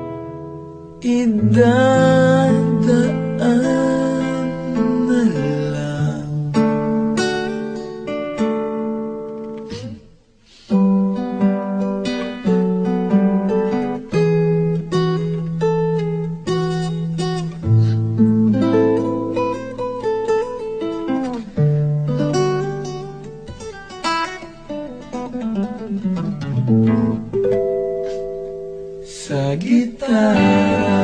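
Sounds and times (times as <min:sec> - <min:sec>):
acoustic guitar playing: 0:00.0 - 0:31.0.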